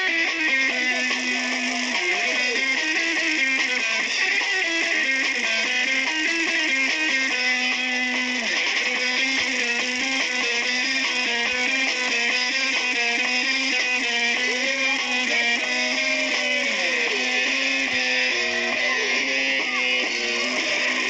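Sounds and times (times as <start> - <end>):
electric guitar melody: 0.0 - 21.0.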